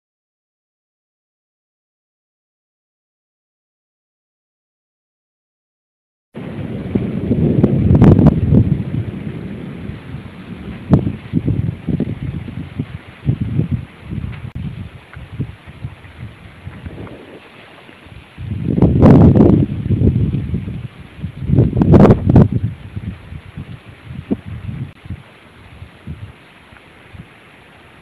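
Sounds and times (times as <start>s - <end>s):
wind buffeting microphone: 6.4s - 27.4s.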